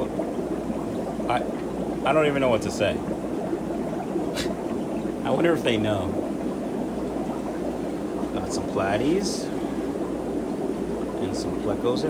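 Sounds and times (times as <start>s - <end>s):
aquarium filters bubbling: 0.0s - 12.0s
constant low hum: 0.0s - 12.0s.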